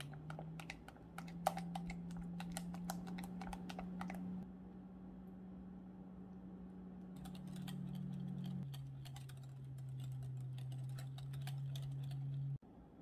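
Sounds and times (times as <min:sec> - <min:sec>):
steady low hum: 0:00.0 - 0:13.0
whisk scraping a glass bowl: 0:07.2 - 0:12.4.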